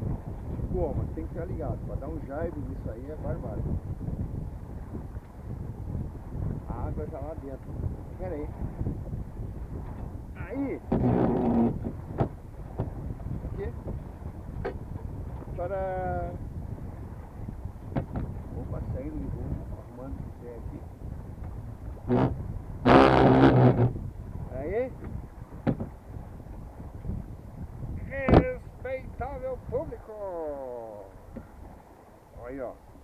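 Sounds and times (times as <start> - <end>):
water noise: 0.0 - 33.0
wind: 0.0 - 33.0
short knocks: 10.9 - 12.9, 17.9 - 18.3, 25.6 - 25.9.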